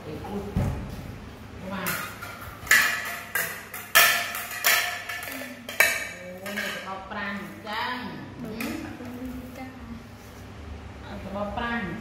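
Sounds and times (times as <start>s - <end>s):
ceramic plates clinking: 1.8s - 7.2s.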